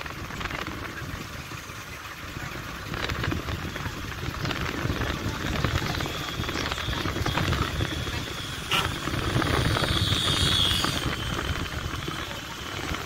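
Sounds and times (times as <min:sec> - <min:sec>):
vehicle engine running: 0:00.0 - 0:13.0
wind and road noise: 0:00.0 - 0:13.0.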